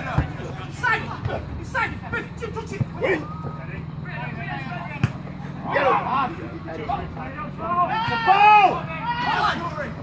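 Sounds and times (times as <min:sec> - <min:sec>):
footballers shouting: 0:00.0 - 0:10.0
steady low hum: 0:00.0 - 0:10.0.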